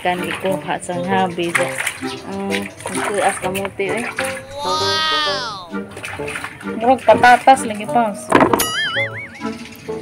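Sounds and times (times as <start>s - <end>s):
background music: 0.0s - 10.0s
short voiced sounds: 4.3s - 5.8s
high vocal note sliding down: 4.4s - 5.8s.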